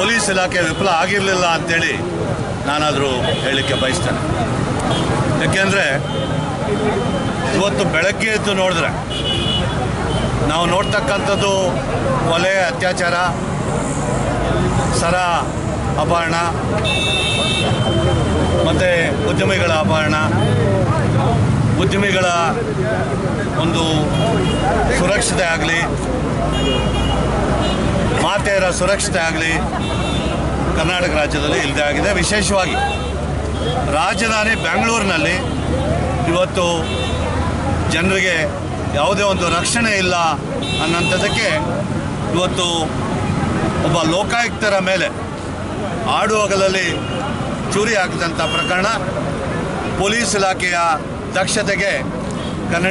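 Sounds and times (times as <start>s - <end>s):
man speaking into microphones: 0.0s - 4.4s, 5.2s - 9.1s, 10.3s - 13.6s, 17.7s - 26.2s, 28.0s - 29.8s, 30.6s - 37.0s, 37.8s - 43.0s, 43.7s - 45.3s, 45.9s - 52.9s
street noise: 0.0s - 52.9s.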